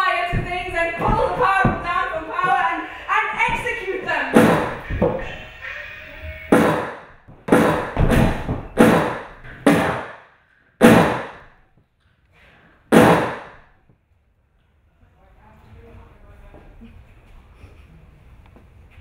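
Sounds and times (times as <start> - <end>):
sharp loud bangs in a large room: 3.5 - 5.3, 6.5 - 11.6, 12.8 - 13.8.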